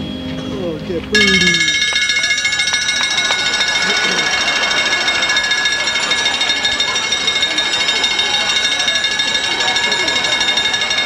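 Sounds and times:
rapid buzzing drum roll: 1.2s - 11.0s.

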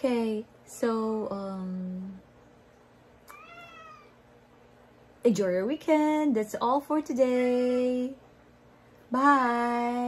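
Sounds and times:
cat meowing: 3.3s - 4.2s.

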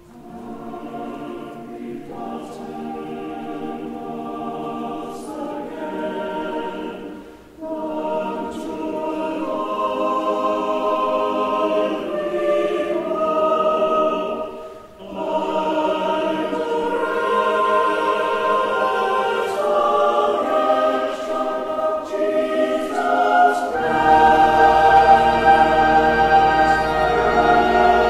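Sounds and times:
church choir singing: 0.0s - 28.0s.

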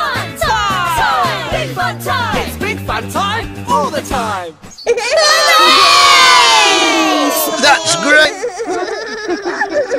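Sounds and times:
children cheering: 5.1s - 8.4s.

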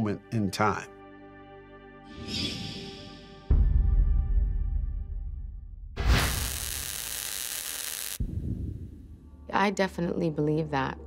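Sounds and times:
static white noise burst: 6.0s - 8.3s.

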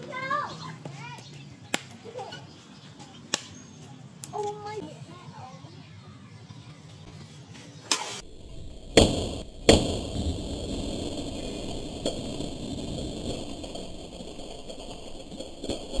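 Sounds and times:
steady noisy rush: 8.2s - 16.0s.

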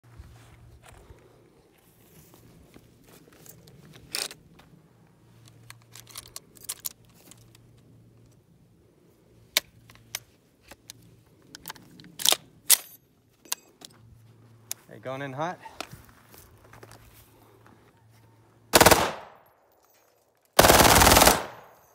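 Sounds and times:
metallic clicks and rattles of loading: 5.4s - 8.4s.

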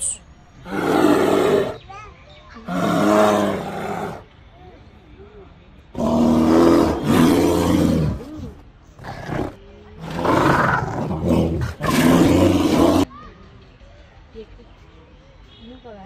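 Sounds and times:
bear making rough calls: 9.0s - 13.1s.

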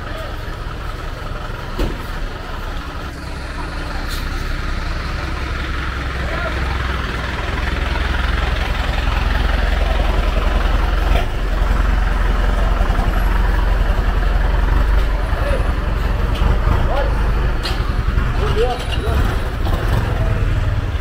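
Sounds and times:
diesel truck engine rumbling: 0.0s - 21.0s
voices: 0.0s - 21.0s.

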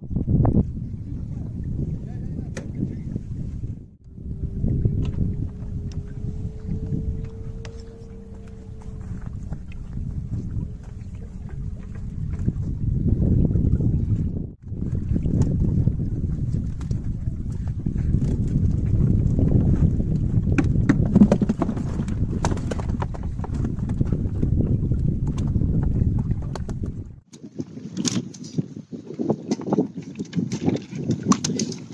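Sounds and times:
low wind rumble on microphone: 0.0s - 31.9s.

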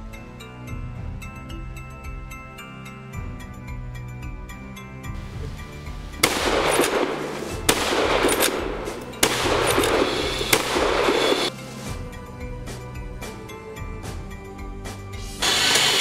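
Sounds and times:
soft background music: 0.0s - 16.0s
long rolling echo noise: 6.2s - 11.5s
rifle shots: 6.2s - 11.5s.

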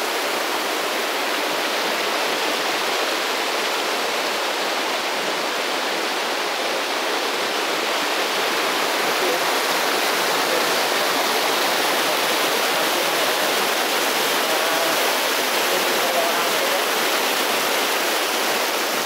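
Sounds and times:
stream rushing over boulders: 0.0s - 19.0s.

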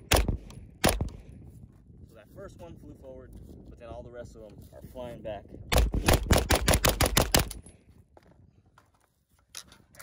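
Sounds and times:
carbine firing rapid shots: 5.8s - 7.6s.

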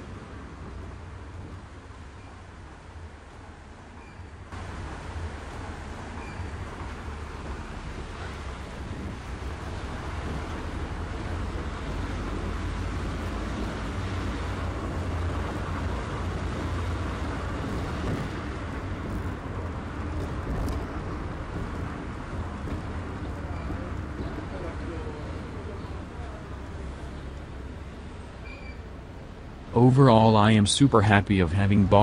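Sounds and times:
car engine and tyre rumble: 0.0s - 32.0s.

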